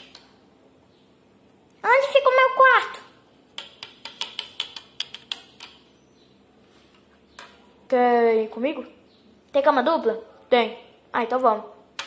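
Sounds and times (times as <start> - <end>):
plastic toys clicking on stone: 3.6 - 5.8.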